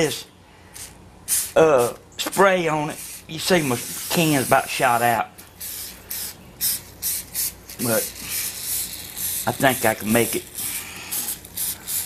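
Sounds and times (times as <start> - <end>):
aerosol can spraying: 0.8 - 2.0, 2.9 - 12.0.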